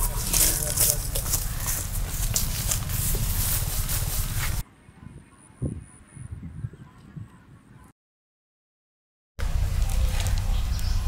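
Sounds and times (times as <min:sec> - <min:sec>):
dry grass and leaves crackling: 0:00.0 - 0:04.6, 0:09.4 - 0:11.0
wind rumbling on microphone: 0:00.0 - 0:07.9, 0:09.4 - 0:11.0.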